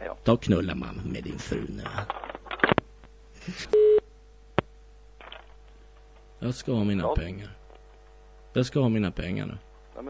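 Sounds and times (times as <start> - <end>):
telephone busy tone beep: 3.7 - 4.0.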